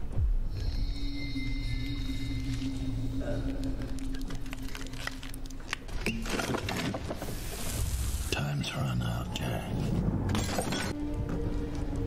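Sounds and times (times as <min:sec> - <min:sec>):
man speaking: 0:08.3 - 0:09.8.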